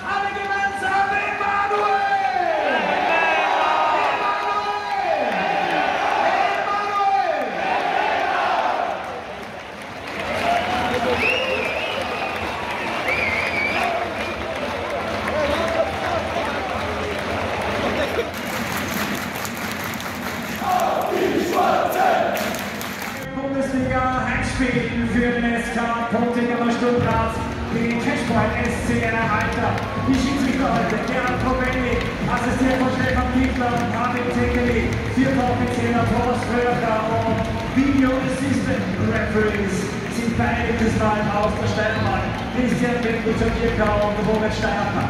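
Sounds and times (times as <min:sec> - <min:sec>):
crowd roaring and cheering: 0:00.0 - 0:23.3, 0:24.6 - 0:45.0
crowd whistles: 0:10.4 - 0:14.7, 0:41.8 - 0:43.1.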